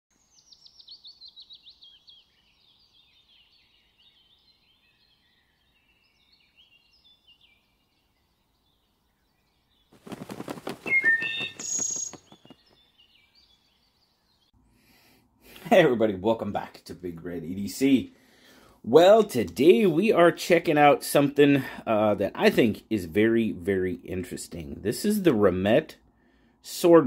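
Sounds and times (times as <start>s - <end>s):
bird chirps: 0.1s - 14.6s
bird rapid rattling call: 10.0s - 12.8s
bird whistling falling notes: 10.0s - 12.8s.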